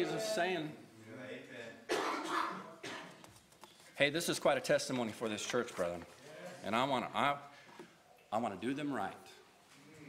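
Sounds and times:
person coughing: 1.9s - 3.2s.

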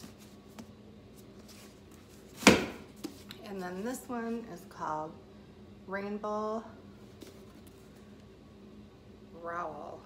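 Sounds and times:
book set down on table: 2.3s - 3.3s.

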